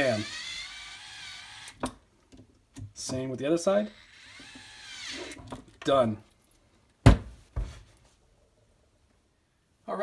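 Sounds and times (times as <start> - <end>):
electric screwdriver motor running: 0.0 - 1.8, 3.9 - 5.4.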